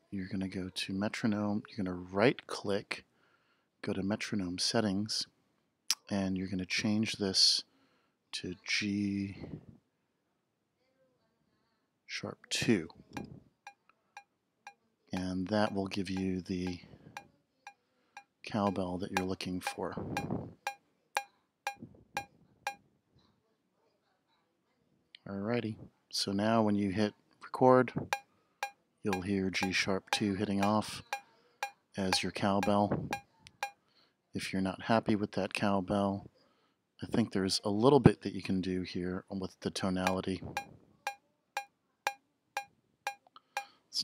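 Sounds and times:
metronome cowbell strikes: 18.7 - 20.3, 29.1 - 31.2, 32.1 - 33.7.

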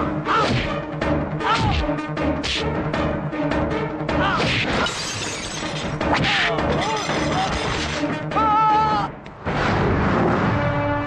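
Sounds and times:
film music: 0.0 - 11.0
shattering crash: 4.8 - 6.1, 6.7 - 8.0.

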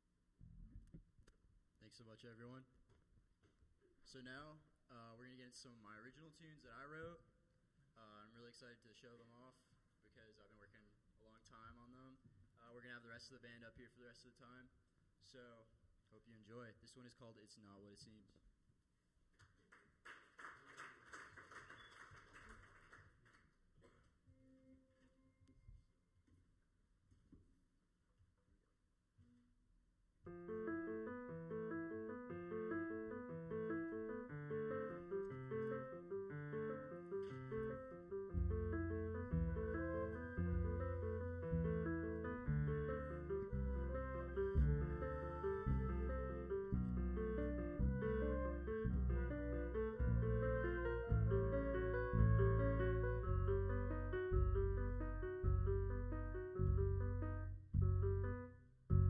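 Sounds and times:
bass: 0.0 - 1.3, 30.3 - 59.0
audience applause: 19.7 - 23.4
jazz piano: 30.3 - 59.0.

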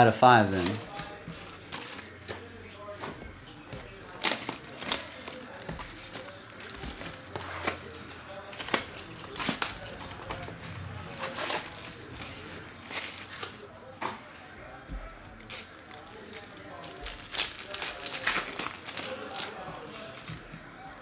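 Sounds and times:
foil wrapper tearing and crinkling: 4.1 - 8.0, 8.6 - 13.7, 15.4 - 20.3.

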